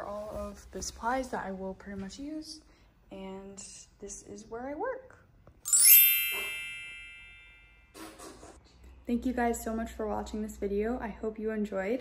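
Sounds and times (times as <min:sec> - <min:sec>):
bell-like ding: 0:05.7 - 0:08.1.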